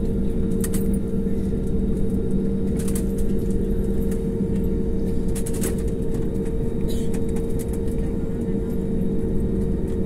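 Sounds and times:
jet engines droning in cabin: 0.0 - 10.0.

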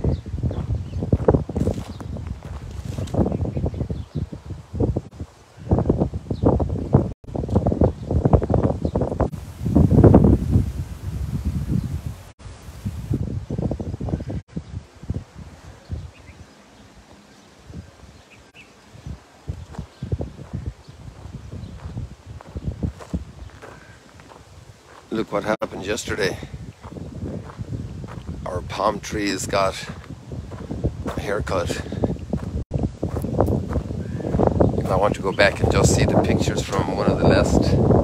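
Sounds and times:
footsteps on sandy ground: 0.0 - 4.3, 19.0 - 38.0
wind buffeting microphone: 0.0 - 38.0.

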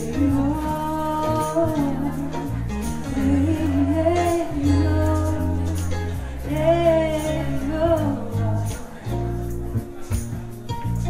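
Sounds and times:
woman singing wordless melody: 0.0 - 9.5
band accompaniment: 0.0 - 11.0.

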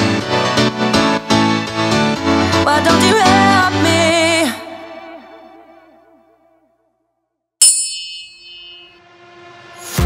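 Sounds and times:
background music: 0.0 - 6.6, 8.6 - 10.0
timer bell ding: 7.6 - 9.0.

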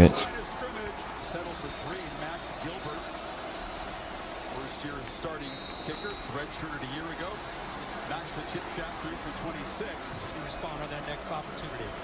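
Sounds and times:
commentator's voice: 0.0 - 3.0, 8.1 - 12.0
stadium crowd noise: 0.0 - 12.0.

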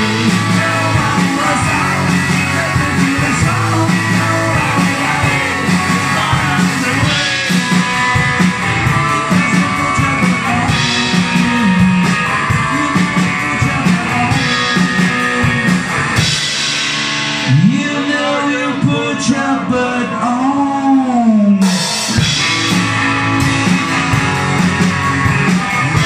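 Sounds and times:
drums and cymbals: 0.0 - 18.5, 21.6 - 26.0
electric guitar: 0.0 - 26.0
guitar slide: 0.0 - 26.0.

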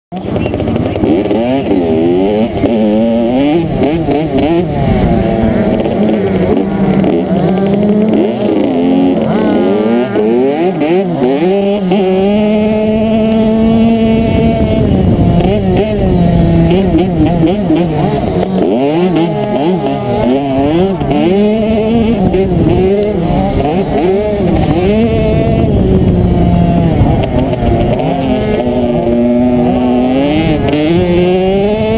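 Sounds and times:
dirt bike engine revving: 0.1 - 31.9.

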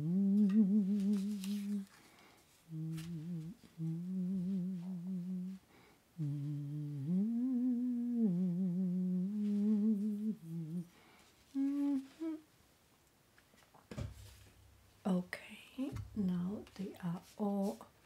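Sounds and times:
person humming a slow tune: 0.0 - 2.0, 2.6 - 12.5.

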